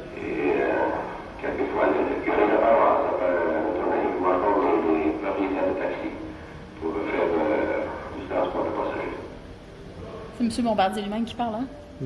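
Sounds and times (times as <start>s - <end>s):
man speaking through speakers: 0.0s - 9.4s.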